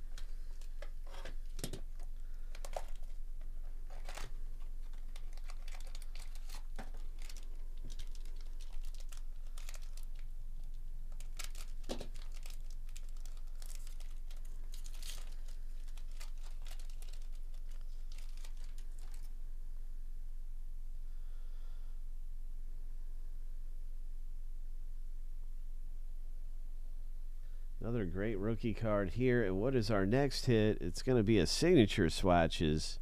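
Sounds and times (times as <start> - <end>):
steady low hum: 0.0 - 33.0
foil pack tearing and crinkling: 0.6 - 10.3, 11.1 - 19.3.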